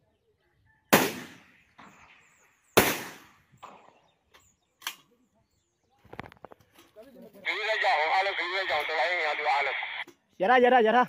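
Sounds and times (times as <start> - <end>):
rifle shots with echo: 0.9 - 2.2, 2.8 - 4.0
faint noise: 6.1 - 10.0.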